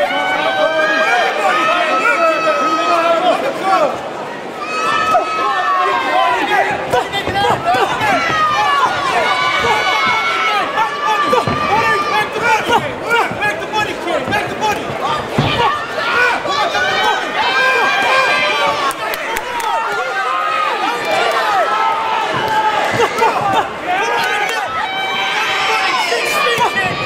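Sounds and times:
crowd shouting: 0.0s - 27.0s.

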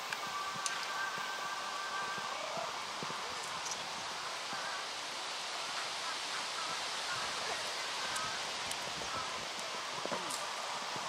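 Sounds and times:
faint voices: 0.0s - 11.0s
outdoor hiss: 0.0s - 11.0s.

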